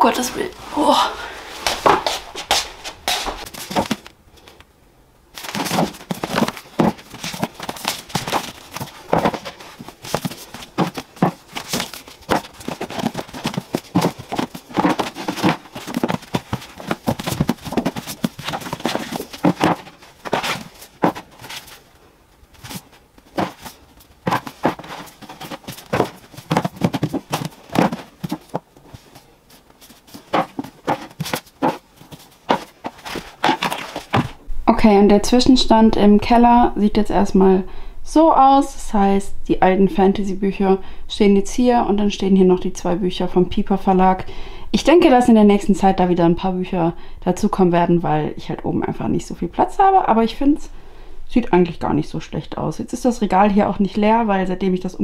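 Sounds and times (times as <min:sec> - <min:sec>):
books knocking onto shelves: 0:05.4 - 0:21.6, 0:22.6 - 0:28.7, 0:30.1 - 0:34.4.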